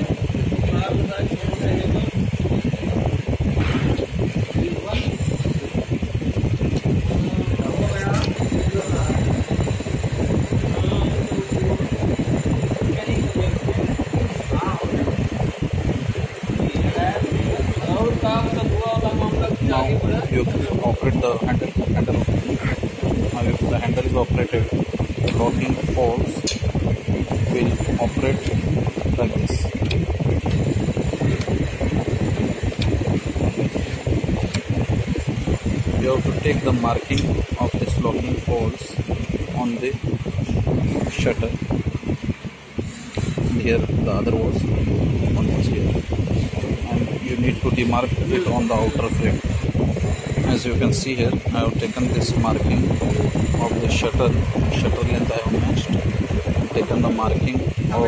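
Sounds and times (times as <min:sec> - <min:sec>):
indistinct voices talking: 0:00.0 - 0:58.0
low rumbling noise: 0:00.0 - 0:58.0.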